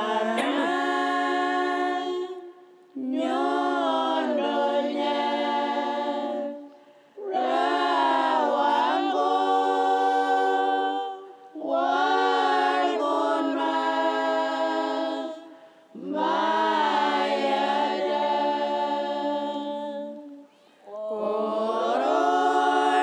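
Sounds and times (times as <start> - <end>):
group singing unaccompanied: 0.0 - 23.0.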